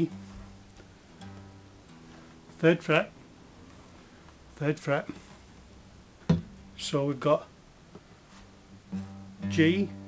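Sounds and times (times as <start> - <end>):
acoustic guitar low note: 0.0 - 7.6, 8.4 - 10.0.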